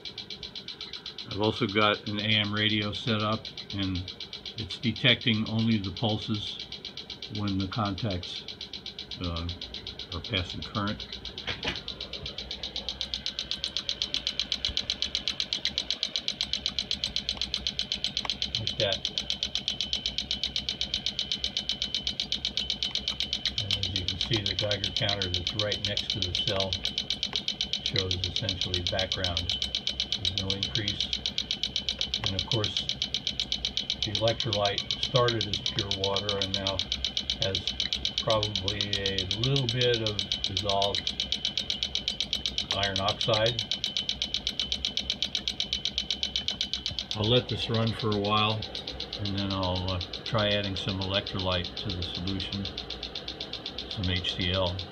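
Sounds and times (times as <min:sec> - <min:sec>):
clicks on am radio: 0:00.0 - 0:54.9
rapid sharp clicking: 0:00.0 - 0:54.9
thin steady high tone: 0:00.0 - 0:54.9.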